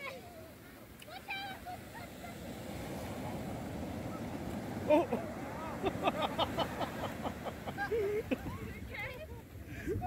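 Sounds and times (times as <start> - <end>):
waves breaking: 0.0 - 10.0
people laughing: 4.8 - 10.0.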